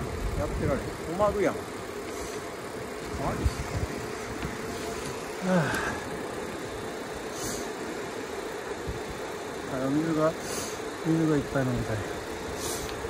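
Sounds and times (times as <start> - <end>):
bike tyres rolling on asphalt: 0.0 - 13.0
constant hum: 0.0 - 13.0
wind on microphone: 3.1 - 4.8.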